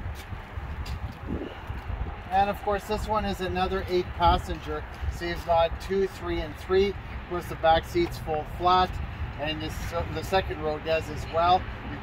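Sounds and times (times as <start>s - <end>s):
wind on microphone: 0.0s - 10.3s.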